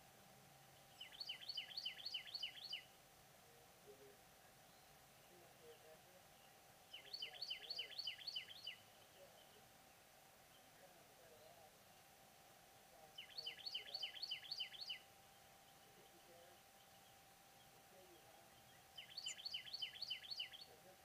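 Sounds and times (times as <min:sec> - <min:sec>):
songbird chirping: 0:00.0 - 0:21.0.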